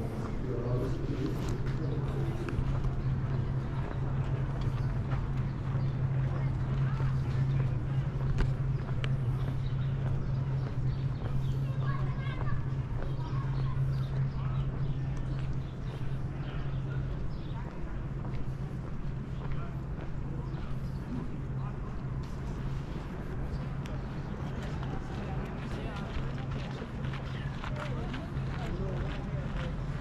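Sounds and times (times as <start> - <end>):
indistinct voices of passers-by: 0.0 - 30.0
steady low hum: 0.0 - 30.0.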